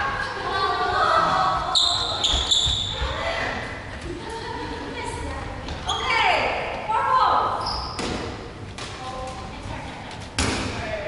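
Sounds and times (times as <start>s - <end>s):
voices in hall: 0.0s - 11.0s
sneakers squeaking on wooden floor: 1.7s - 3.1s, 5.7s - 6.2s, 7.6s - 8.2s.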